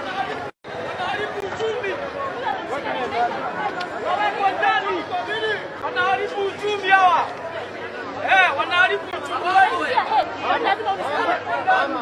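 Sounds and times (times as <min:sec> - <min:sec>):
voices talking over one another: 0:00.0 - 0:12.0.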